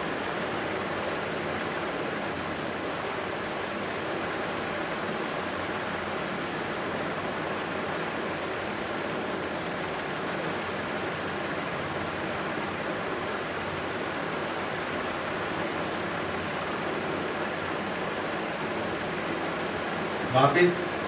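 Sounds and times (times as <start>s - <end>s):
steady room rushing noise: 0.0s - 21.0s.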